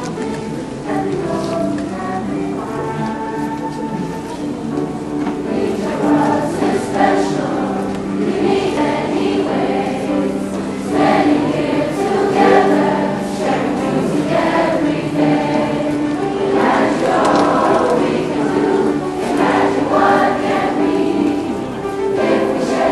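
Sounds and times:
children's chorus singing: 0:00.0 - 0:22.9.

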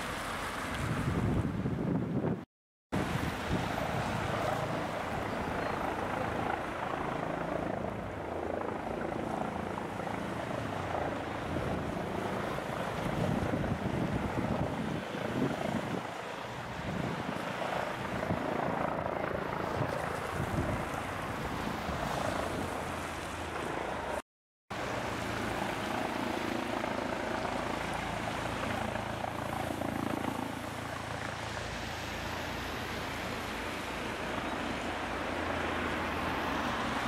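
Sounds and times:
helicopter flying overhead: 0:03.0 - 0:37.0.

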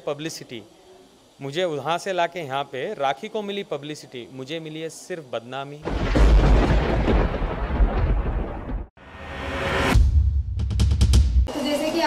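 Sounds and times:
deep rumbling boom: 0:05.9 - 0:08.9.

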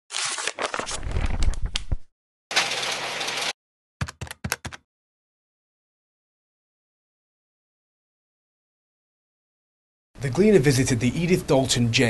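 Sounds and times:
newspaper rustling and crumpling: 0:00.1 - 0:01.8, 0:02.5 - 0:03.5.

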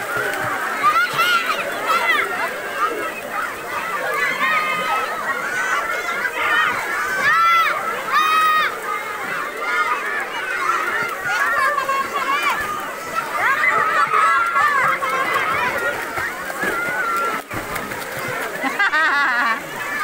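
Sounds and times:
children talking and calling out: 0:00.0 - 0:20.0.

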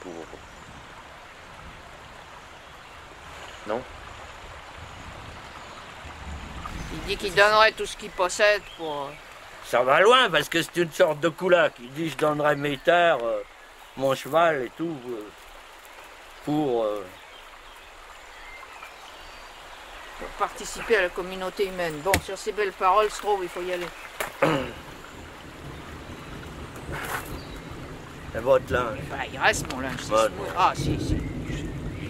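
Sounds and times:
distant birds chirping: 0:00.0 - 0:32.0
outdoor background noise: 0:00.0 - 0:32.0
low rumble: 0:05.2 - 0:08.2
even hiss: 0:05.7 - 0:15.4.

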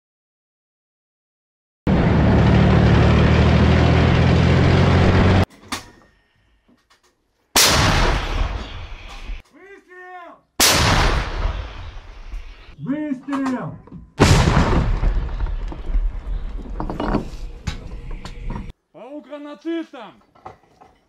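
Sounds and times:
vehicle engine running: 0:01.9 - 0:05.5
gun firing blasts: 0:07.6 - 0:09.1, 0:10.6 - 0:12.6, 0:14.2 - 0:15.5.

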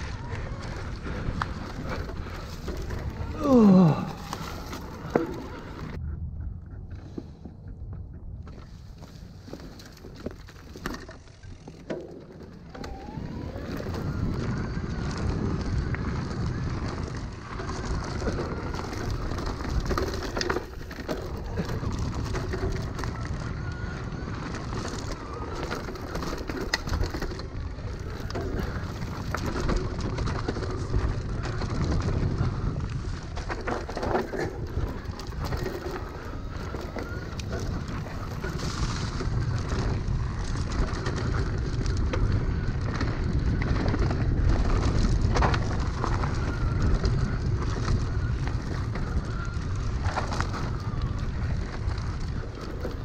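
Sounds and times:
tyres rolling on dirt trail: 0:00.0 - 0:53.0
electric motor whining: 0:12.7 - 0:16.0
wind on microphone: 0:12.7 - 0:53.0.

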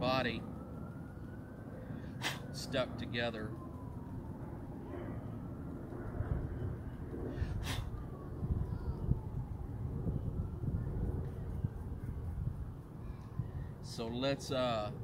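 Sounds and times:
distant siren falling in pitch: 0:00.0 - 0:15.0
low street rumble: 0:00.0 - 0:15.0.

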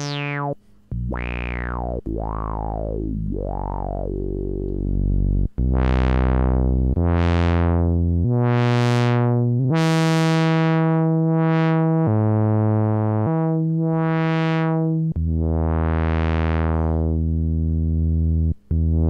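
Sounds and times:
synthesizer notes with resonant filter sweep: 0:00.0 - 0:19.0.

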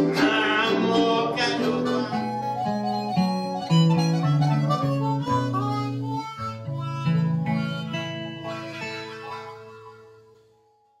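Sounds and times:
acoustic guitar strumming: 0:00.0 - 0:11.0
harmonica notes: 0:00.0 - 0:11.0.

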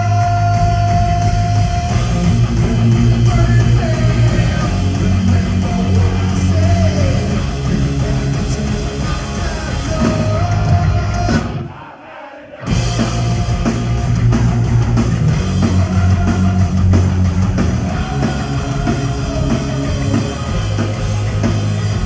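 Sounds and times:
rock band playing: 0:00.0 - 0:11.9, 0:12.5 - 0:22.0.

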